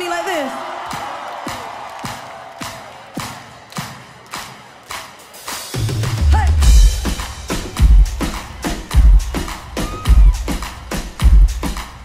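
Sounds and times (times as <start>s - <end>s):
kick drum with claps: 0.8s - 5.1s, 7.8s - 9.5s.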